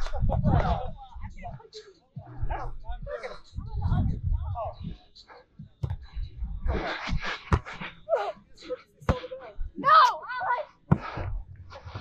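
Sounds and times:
wind rumble on microphone: 0.0s - 1.5s, 2.3s - 5.1s, 6.0s - 7.3s
muffled voices talking: 0.0s - 11.2s.

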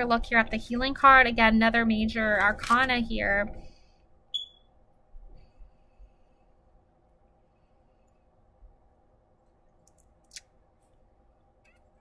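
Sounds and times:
short high-pitched chirp: 4.4s - 4.6s.

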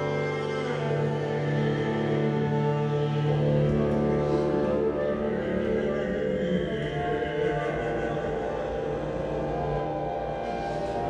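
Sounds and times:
slow ensemble sustained notes: 0.0s - 11.0s
steady low drone: 0.0s - 11.0s.

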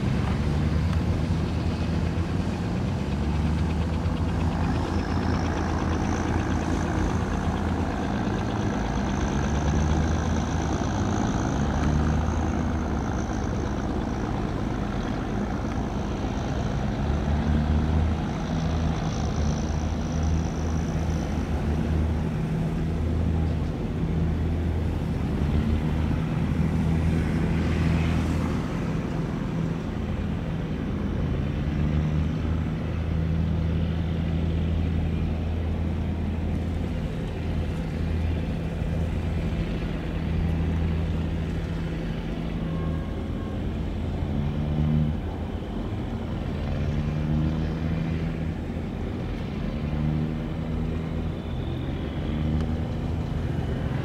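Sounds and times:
diesel boat engine droning: 0.0s - 54.0s.

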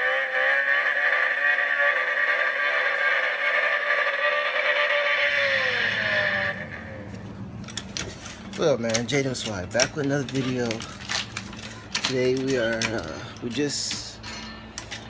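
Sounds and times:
car engine revving: 0.0s - 7.3s.

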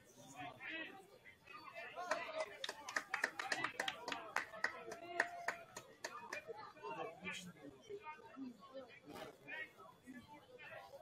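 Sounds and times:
voices nearby: 0.0s - 11.0s
quick hand clapping: 2.1s - 6.4s.

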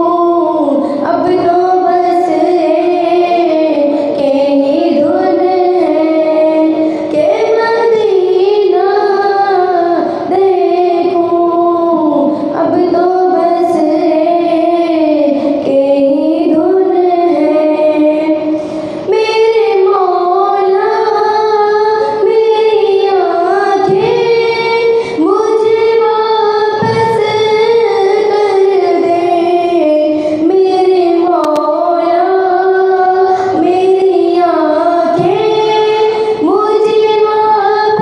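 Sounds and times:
girl singing into a microphone: 0.0s - 38.0s.

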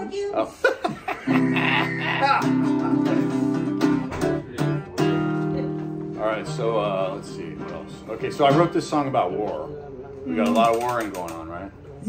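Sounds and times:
acoustic guitar strummed: 1.2s - 11.2s.

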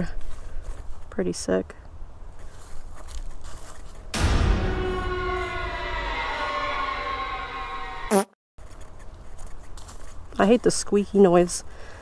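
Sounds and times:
crackling and scraping rustles: 2.3s - 4.2s, 8.6s - 11.0s.

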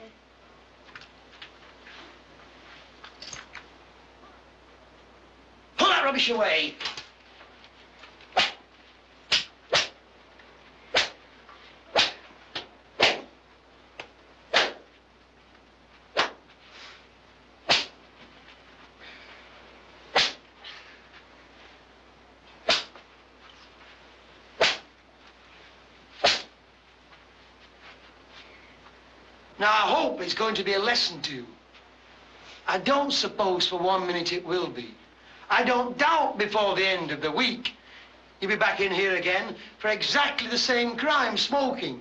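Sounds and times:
cane swishing cracks: 6.8s - 10.0s, 10.8s - 13.4s, 14.0s - 15.0s, 16.1s - 16.6s, 17.6s - 18.0s, 20.1s - 20.6s, 22.5s - 23.8s, 24.6s - 25.0s, 26.1s - 26.6s.

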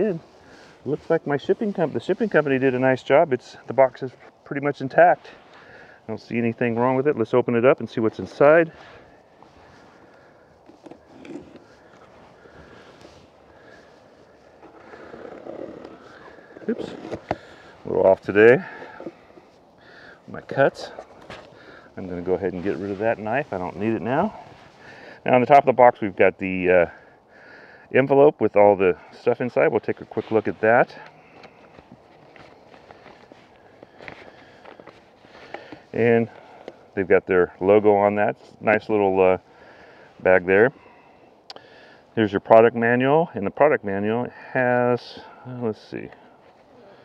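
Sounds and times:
hands handling cardboard: 14.0s - 19.7s.

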